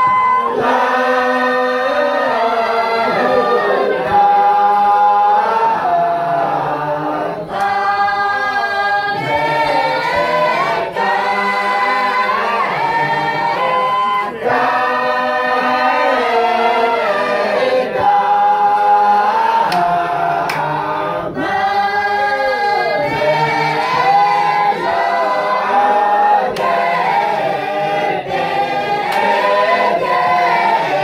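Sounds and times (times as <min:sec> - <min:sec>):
group singing unaccompanied: 0:00.0 - 0:31.0.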